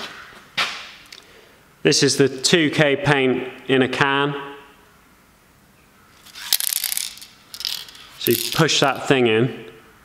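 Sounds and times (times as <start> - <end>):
aerosol can rattling: 6.2 - 8.7.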